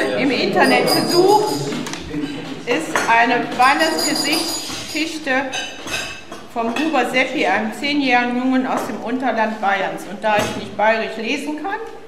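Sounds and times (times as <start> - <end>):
cups plates and cutlery clinking: 0.0 - 7.0
woman reading aloud: 2.7 - 5.5.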